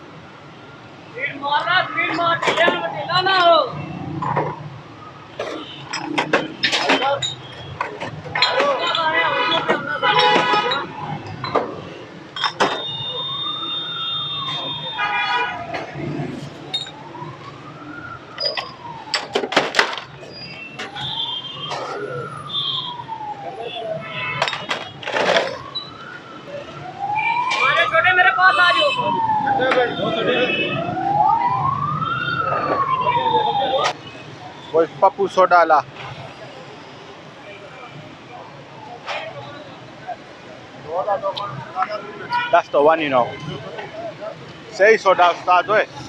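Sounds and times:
street and crowd noise: 0.0 - 46.0
siren wailing: 0.1 - 35.1
glass clinking: 12.4 - 12.8.

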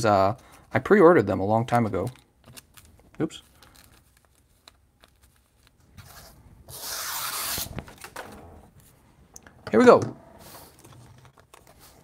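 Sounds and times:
packaging rustling: 2.0 - 6.2.

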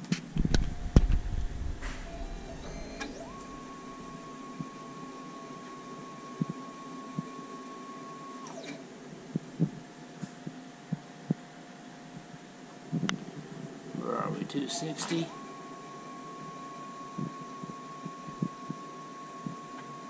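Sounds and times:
stepper motor whine: 0.2 - 9.9, 13.9 - 20.0.

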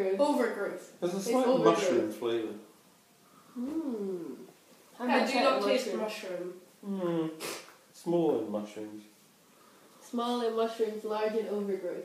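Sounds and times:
person humming: 3.5 - 4.5, 6.8 - 7.6.

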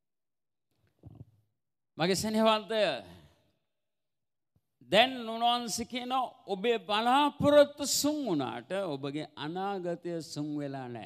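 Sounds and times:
man speaking into a microphone: 2.0 - 3.5, 4.7 - 11.0.

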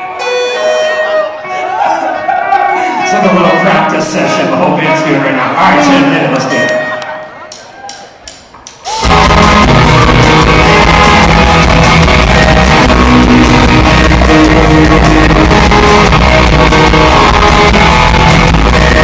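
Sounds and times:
rock band playing: 0.0 - 5.2, 8.9 - 19.0.

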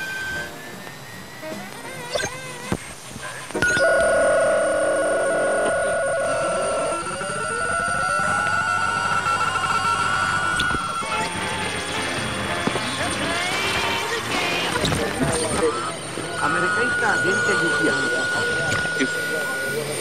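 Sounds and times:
lower steady tone: 3.6 - 12.4
high radio whistle: 5.9 - 12.6, 13.8 - 20.0.

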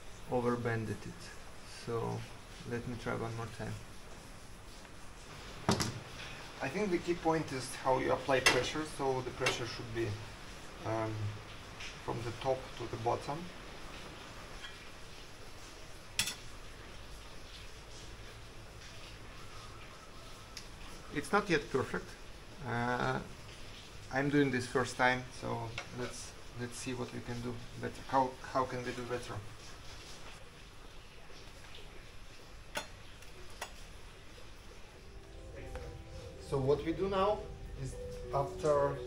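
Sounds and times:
faint low hum: 0.0 - 39.0
faint room noise: 0.0 - 39.0.

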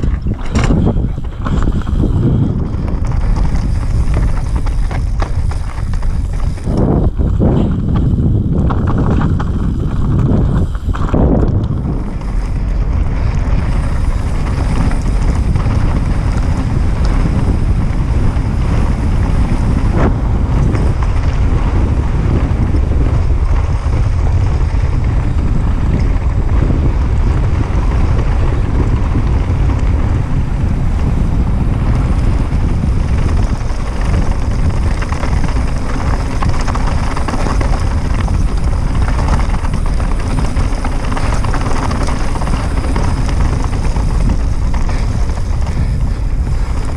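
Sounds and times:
tyres on loose stones: 0.0 - 21.5, 31.8 - 46.9
bike rattle: 0.0 - 46.9
wheels knocking on rocks: 0.0 - 46.9
wind rumble on microphone: 0.0 - 46.9.

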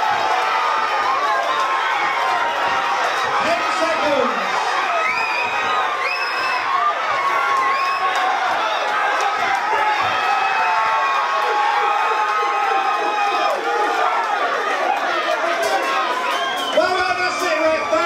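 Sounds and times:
crowd cheering and shouting: 0.0 - 18.0.

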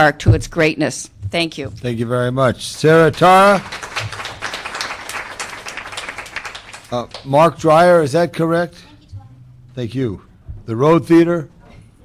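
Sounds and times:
audience applauding: 2.6 - 7.4.

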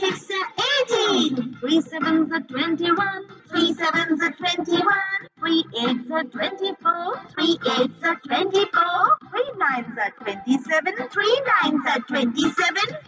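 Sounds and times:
backing music: 0.0 - 13.0
child singing: 0.0 - 13.0.

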